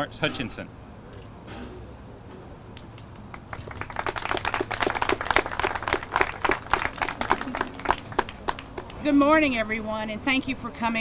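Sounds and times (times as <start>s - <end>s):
audience applauding: 3.3s - 9.0s.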